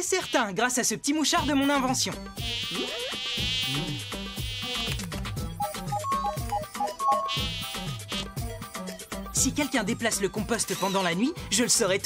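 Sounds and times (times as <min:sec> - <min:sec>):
high mosquito-like buzz: 0:00.0 - 0:00.5, 0:01.4 - 0:06.0, 0:07.1 - 0:08.9.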